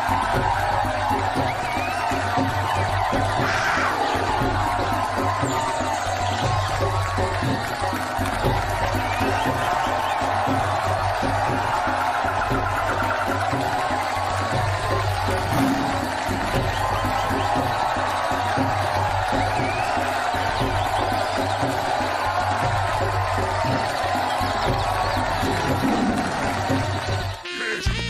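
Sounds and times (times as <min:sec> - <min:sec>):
audience cheering and whooping: 0:00.0 - 0:27.8
loud dance music: 0:00.0 - 0:28.0.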